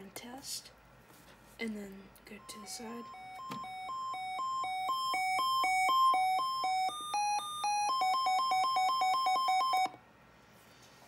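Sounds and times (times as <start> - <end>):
two-tone electronic alert beeps: 2.4 - 9.9.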